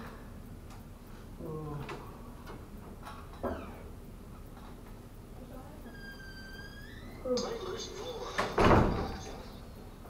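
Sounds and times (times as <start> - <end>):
thin rising squeak: 5.9 - 7.2.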